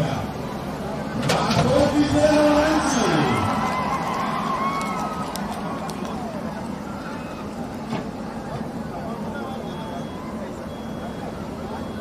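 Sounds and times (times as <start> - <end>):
crowd voices: 0.0 - 12.0
excavator engine and hydraulics: 0.0 - 12.0.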